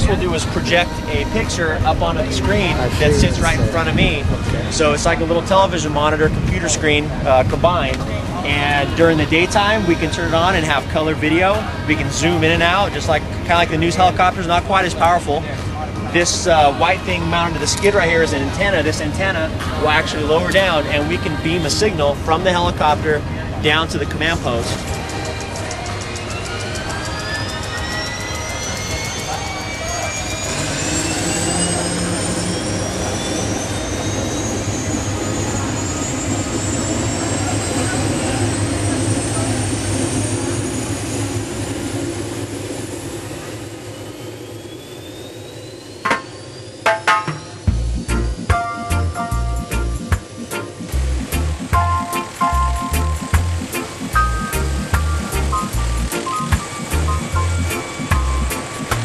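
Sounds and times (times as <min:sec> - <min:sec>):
helicopter turbine whine: 0:00.0 - 0:59.0
low rotor rumble: 0:00.0 - 0:59.0
music with a steady beat: 0:47.0 - 0:59.0.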